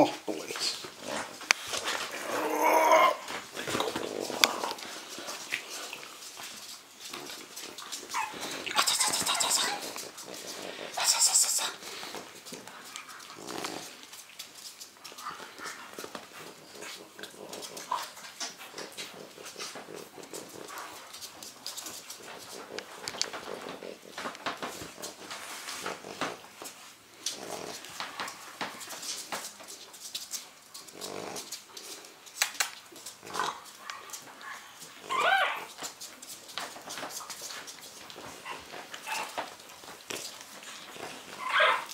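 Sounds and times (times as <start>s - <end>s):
paws on tiled floor: 0.0s - 41.9s
puppies whimpering and squeaking: 8.0s - 10.1s, 34.9s - 35.9s, 38.3s - 39.6s, 41.1s - 41.9s
puppy high squeal: 35.1s - 35.7s, 41.4s - 41.9s.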